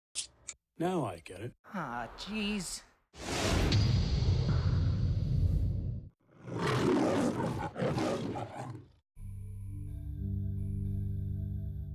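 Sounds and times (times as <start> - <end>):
lion roaring: 6.3 - 9.0.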